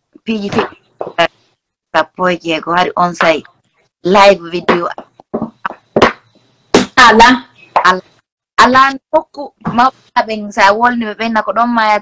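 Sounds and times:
woman's voice fragments: 0.1s - 6.1s, 6.9s - 12.0s.

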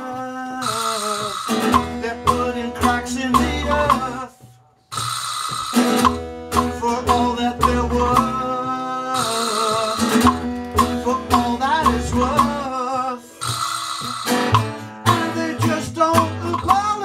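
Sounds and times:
live band with guitar bass drums: 0.0s - 4.3s, 4.9s - 17.0s.

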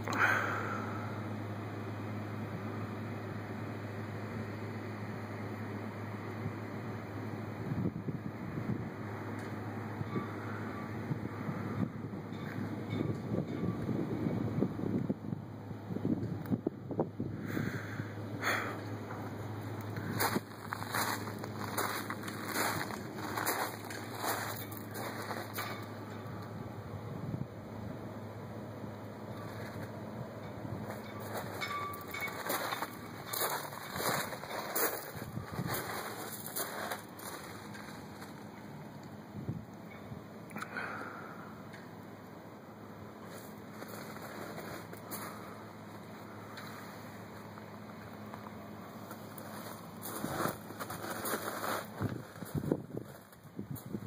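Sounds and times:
wind buffeting microphone: 30.8s - 36.1s, 51.9s - 54.0s.

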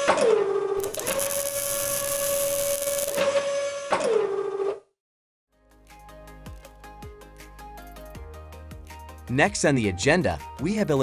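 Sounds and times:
loud hiss: 0.8s - 3.2s
mechanical servo whine: 0.8s - 3.9s.

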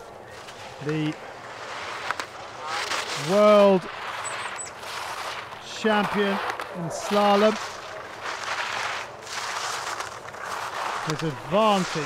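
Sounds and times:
ski edges scraping on hard snow: 0.3s - 12.0s.

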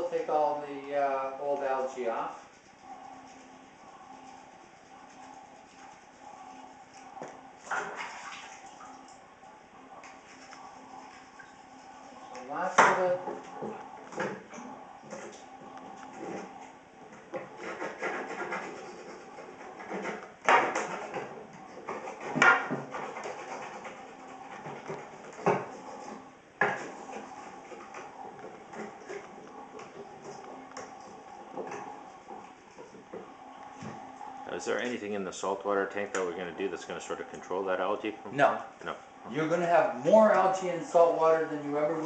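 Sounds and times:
knife scraping plastic pipework: 17.3s - 33.0s.

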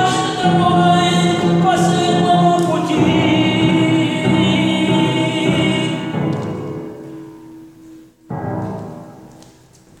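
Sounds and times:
man singing long note: 0.0s - 6.3s
piano chords: 0.0s - 10.0s.

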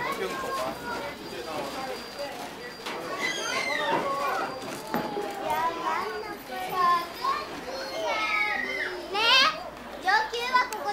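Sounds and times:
children calling out and chattering: 0.0s - 10.9s.

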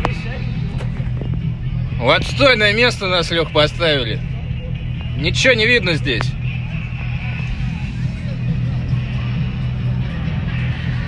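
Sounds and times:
car engine humming: 0.0s - 11.0s
faint voices outside: 0.0s - 11.0s.

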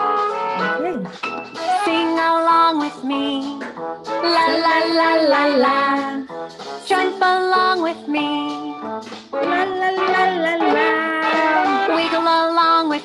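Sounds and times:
instrumental backing: 0.0s - 13.0s
person singing: 1.6s - 13.0s.

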